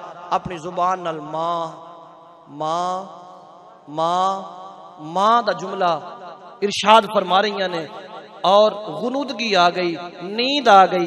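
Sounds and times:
man chanting into a microphone: 0:02.5 - 0:11.0.

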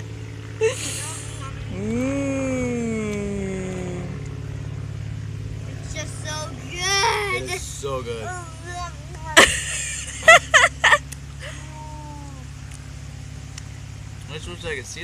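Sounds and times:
steady low hum: 0:00.0 - 0:15.0
short vocal sounds: 0:00.8 - 0:04.3
person's drawn-out vocal sound: 0:01.7 - 0:04.2
laughter: 0:09.4 - 0:11.7.

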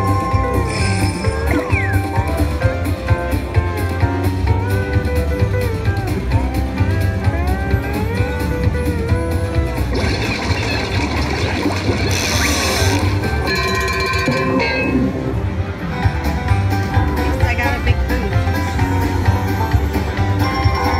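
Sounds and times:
slot machine game sound effect: 0:00.0 - 0:02.5, 0:09.9 - 0:15.4
country guitar music: 0:00.0 - 0:20.9.

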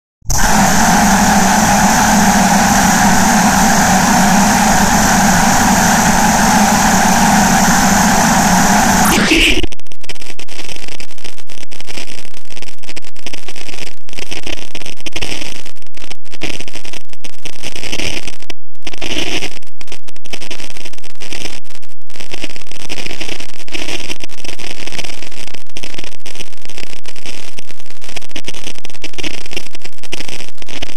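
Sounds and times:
dense distorted buzzing: 0:00.2 - 0:10.6
harsh clipped crackle: 0:00.3 - 0:30.9.

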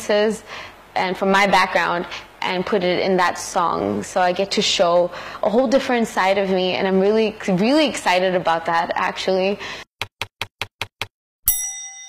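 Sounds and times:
bright bell-like ding: 0:11.5 - 0:12.0.

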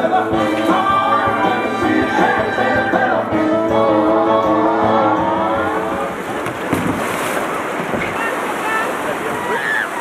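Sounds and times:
music: 0:00.0 - 0:06.2
white water rushing: 0:00.0 - 0:10.0.

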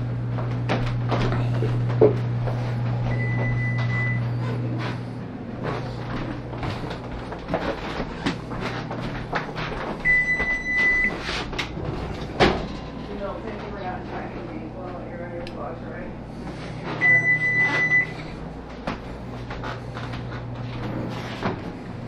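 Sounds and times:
low steady hum: 0:00.0 - 0:22.0
oven timer long high beep: 0:03.0 - 0:04.6, 0:10.0 - 0:11.2, 0:17.0 - 0:18.4.

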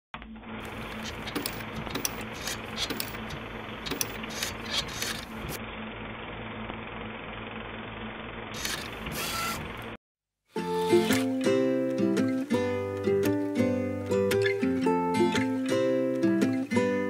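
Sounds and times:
mechanical whir and hum: 0:00.2 - 0:10.0.

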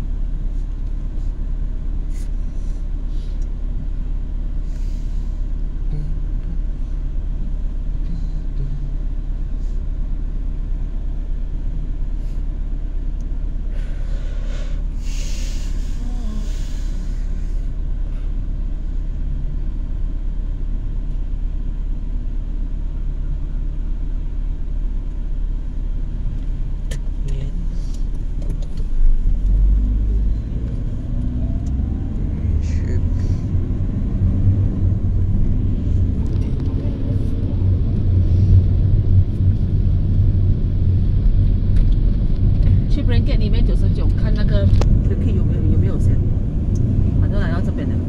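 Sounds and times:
car engine and road rumble: 0:00.0 - 0:48.0.

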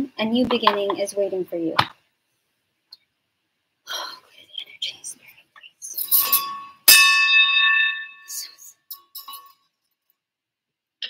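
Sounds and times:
soft whispers: 0:03.9 - 0:06.2, 0:08.3 - 0:08.9
brass bell ringing: 0:06.2 - 0:08.5.

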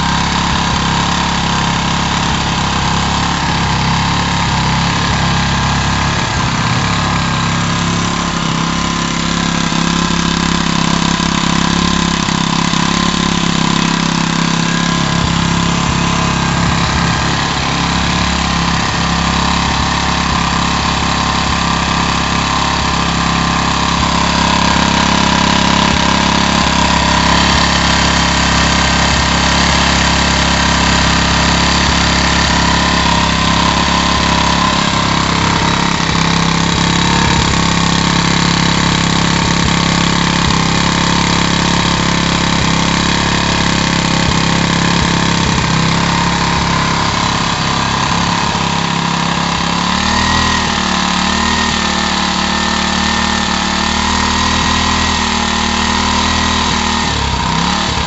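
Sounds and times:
stationary engine running: 0:00.0 - 0:58.0.

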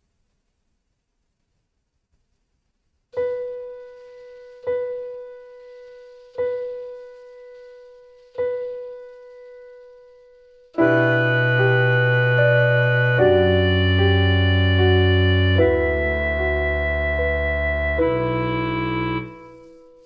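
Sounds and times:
sustained keyboard chord with bass: 0:10.8 - 0:19.5.

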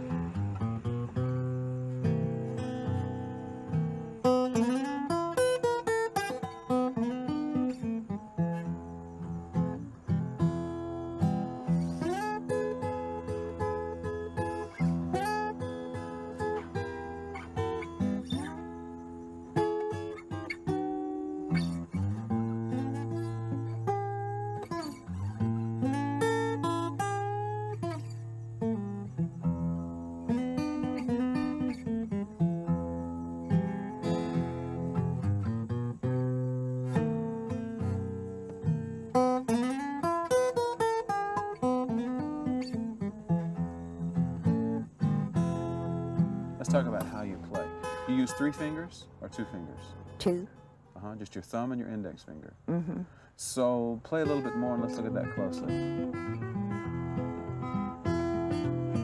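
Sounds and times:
fingerpicked acoustic blues guitar: 0:00.0 - 0:59.0.

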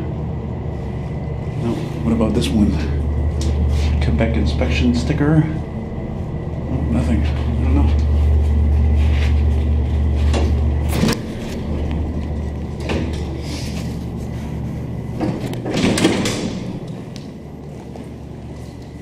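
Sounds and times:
elevator stopping clunk: 0:00.0 - 0:18.3
elevator doors sliding: 0:00.0 - 0:19.0
elevator running hum: 0:00.0 - 0:19.0.

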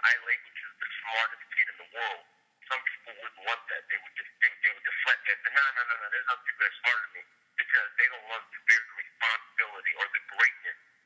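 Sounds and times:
person talking over telephone: 0:00.0 - 0:10.9.

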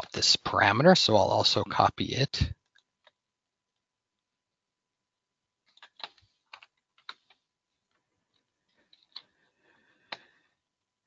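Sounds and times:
keyboard keystrokes and clicks: 0:05.6 - 0:09.3.

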